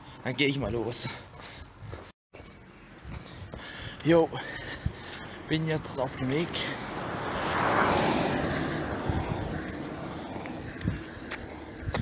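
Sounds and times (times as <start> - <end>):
vehicle passing by: 4.8 - 12.0.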